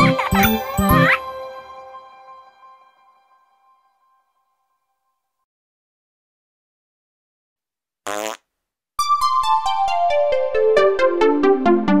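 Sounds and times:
plinking keyboard music: 0:00.0 - 0:02.6
cartoon fart sound effect: 0:08.1 - 0:08.4.

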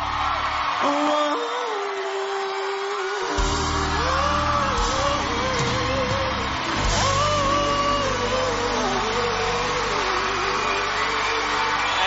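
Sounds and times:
man singing long held note: 0:00.8 - 0:12.0
live band playing: 0:03.4 - 0:12.0.

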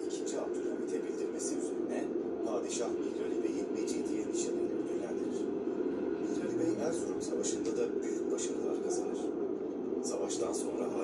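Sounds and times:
muffled narration over loudspeakers: 0:00.0 - 0:11.0.

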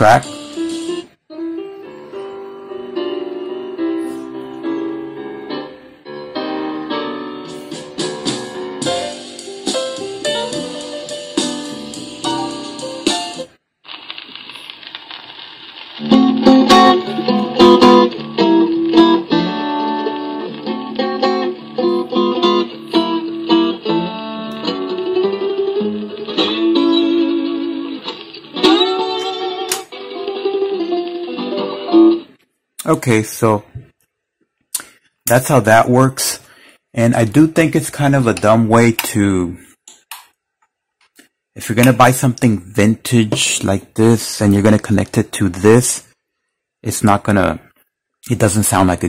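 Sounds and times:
guitar music from a radio speaker: 0:00.0 - 0:14.7, 0:15.3 - 0:32.4.

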